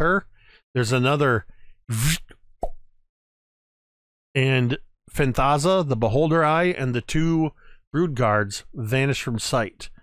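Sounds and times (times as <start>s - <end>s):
man speaking: 0.0s - 2.3s, 4.4s - 10.0s.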